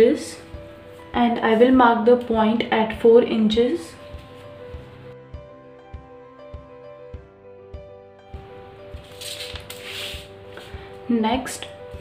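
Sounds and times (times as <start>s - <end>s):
soft background music with beat: 0.0s - 12.0s
paper sheets rustling: 8.9s - 10.8s.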